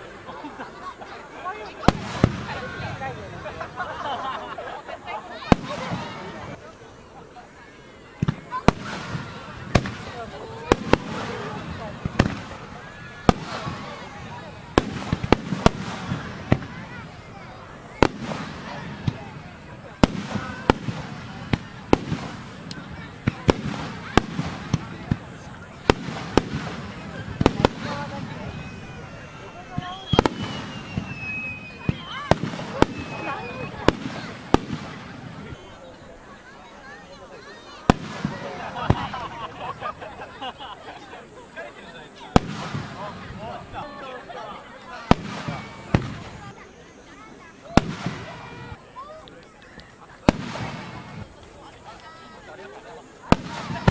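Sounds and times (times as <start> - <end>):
people talking: 0.0 - 53.9
distant firework bangs: 1.8 - 3.9, 5.4 - 6.7, 8.2 - 35.8, 37.8 - 40.0, 42.2 - 43.8, 45.0 - 46.7, 47.6 - 48.8, 49.8 - 51.5, 53.3 - 53.9.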